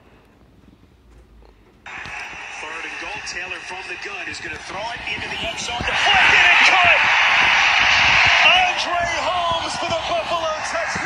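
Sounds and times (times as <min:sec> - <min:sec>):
commentator talking through phone speaker: 0:01.9 - 0:07.2, 0:08.2 - 0:11.0.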